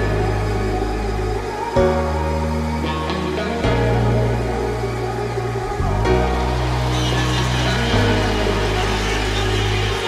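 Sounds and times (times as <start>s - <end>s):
electronic dance synth bass and chords: 0.0s - 10.0s.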